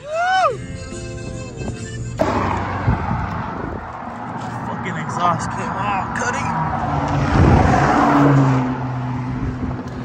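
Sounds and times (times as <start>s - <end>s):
car engine idling and revving: 0.9s - 10.0s.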